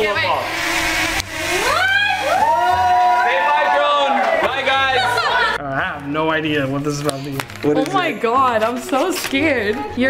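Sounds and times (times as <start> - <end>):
drone motors whining: 0.0 - 3.7
excited voices: 1.6 - 5.6.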